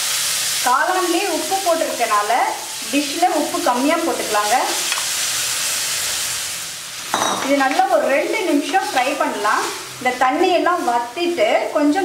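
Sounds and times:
mushrooms sizzling in butter: 0:00.0 - 0:12.0.

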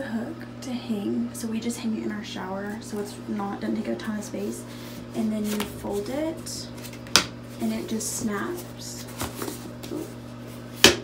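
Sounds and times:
soft handling rustles: 0:04.8 - 0:10.7.

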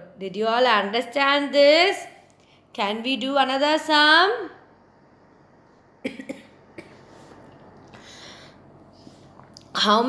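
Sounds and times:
woman coughing: 0:06.0 - 0:06.9.

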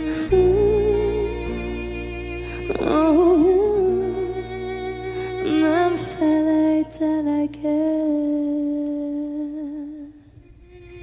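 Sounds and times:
faint low accompaniment: 0:00.0 - 0:11.0.

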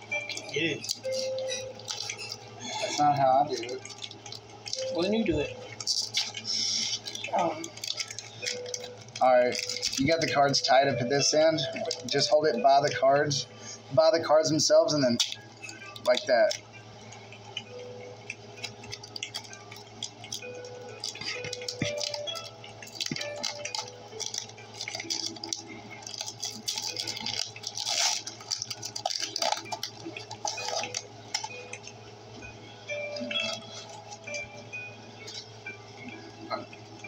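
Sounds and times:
foil wrapper crinkling and tearing: 0:00.2 - 0:13.0, 0:14.4 - 0:16.7, 0:17.4 - 0:32.0, 0:33.1 - 0:34.5.

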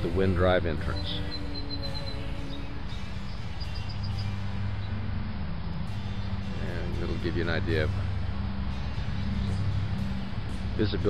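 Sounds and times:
road traffic hum: 0:00.0 - 0:11.0
faint high chirps: 0:00.9 - 0:05.0.

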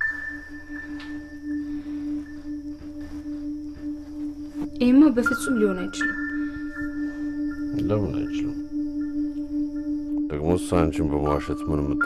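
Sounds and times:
faint high ringing tone: 0:00.0 - 0:12.0
singing bowl like drone: 0:00.0 - 0:12.0.

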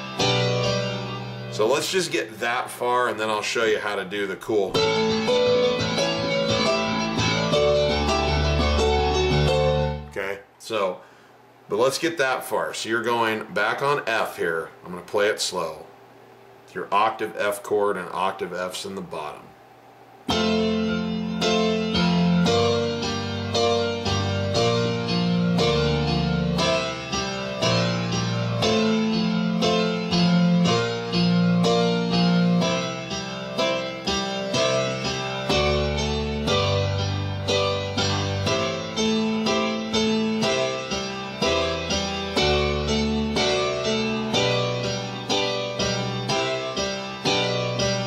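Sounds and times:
piano chords: 0:00.0 - 0:10.3, 0:20.2 - 0:48.0.

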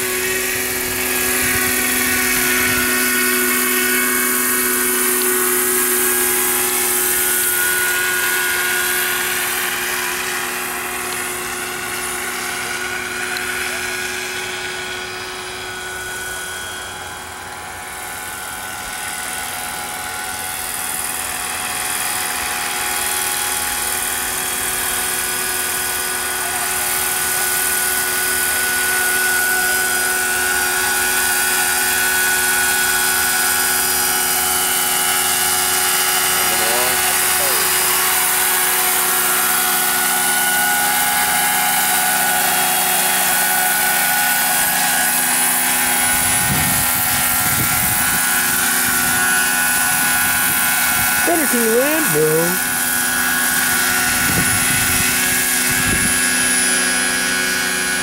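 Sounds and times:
model helicopter rotor whine: 0:00.0 - 0:58.0.

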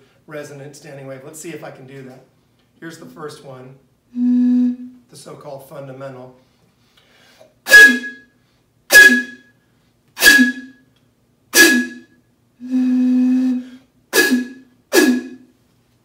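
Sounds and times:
blowing across glass bottle: 0:04.2 - 0:04.9, 0:07.7 - 0:09.6, 0:10.2 - 0:10.8, 0:11.6 - 0:15.5.

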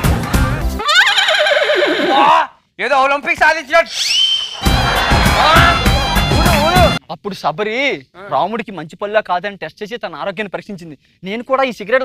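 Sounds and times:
music: 0:00.0 - 0:00.8, 0:04.6 - 0:07.0
horse whinnying: 0:00.8 - 0:02.5.

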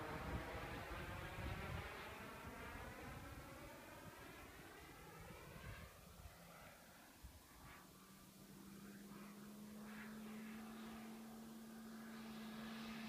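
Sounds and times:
model jet turbine whine: 0:00.0 - 0:13.0.

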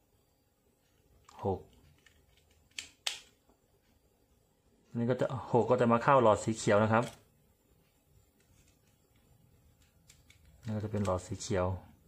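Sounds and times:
small handling clicks: 0:08.4 - 0:11.4.

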